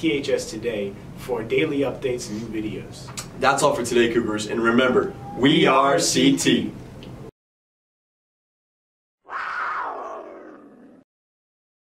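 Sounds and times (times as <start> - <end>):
big cat roar: 9.3 - 11.1.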